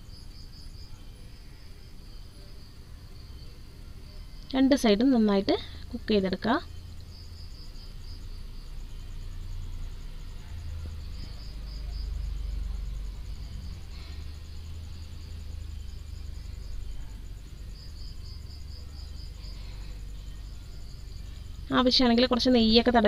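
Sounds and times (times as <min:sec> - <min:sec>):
insects chirping: 0:00.0 - 0:23.0
low rumble: 0:06.6 - 0:22.8.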